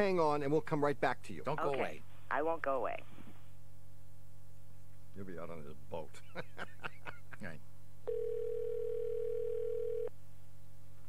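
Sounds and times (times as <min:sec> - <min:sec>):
telephone line tone: 0:08.1 - 0:10.1.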